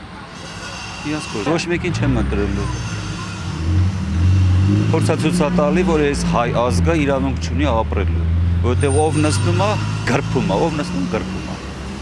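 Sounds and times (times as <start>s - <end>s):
truck engine driving past: 0.4s - 12.0s
man's voice: 4.9s - 11.6s.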